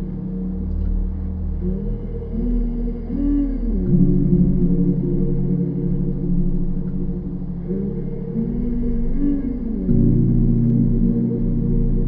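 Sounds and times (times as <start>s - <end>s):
ambient synth pad drone: 0.0s - 12.0s.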